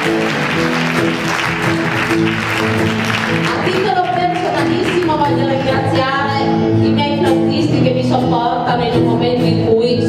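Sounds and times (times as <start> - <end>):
guitars and double bass playing: 0.0 - 10.0.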